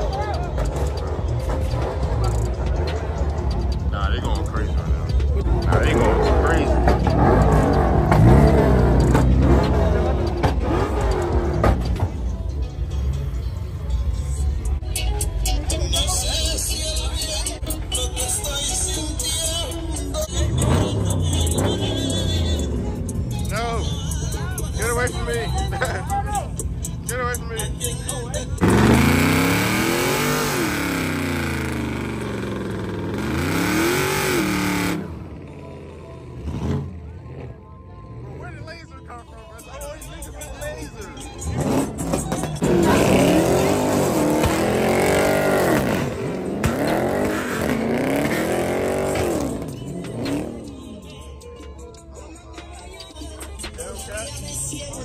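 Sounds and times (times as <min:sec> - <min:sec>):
car engine idling: 0:00.0 - 0:55.0
crowd voices: 0:00.0 - 0:55.0
music: 0:00.0 - 0:55.0
car engine revving hard: 0:05.7 - 0:11.9, 0:28.6 - 0:35.2, 0:41.5 - 0:50.6.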